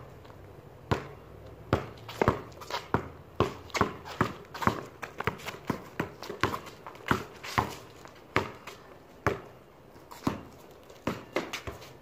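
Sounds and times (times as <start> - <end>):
basketball bouncing on concrete: 0.8 - 12.0
sneakers scuffing pavement: 0.9 - 12.0.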